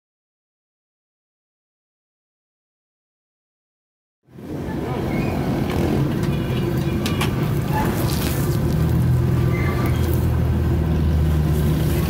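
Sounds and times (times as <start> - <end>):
food stall rumble: 4.3 - 12.0
traffic: 4.3 - 12.0.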